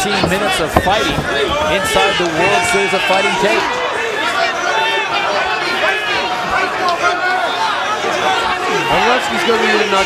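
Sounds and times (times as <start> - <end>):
crowd chattering and shouting: 0.0 - 10.0.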